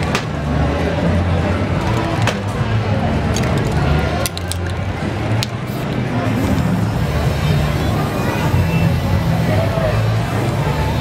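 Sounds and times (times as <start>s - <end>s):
crowd chatter: 0.0s - 11.0s
spray-paint cans clinking: 3.3s - 6.8s.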